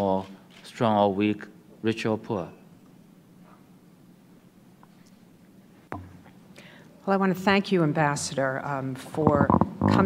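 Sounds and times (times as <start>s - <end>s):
woman speaking into a microphone: 7.1s - 10.0s.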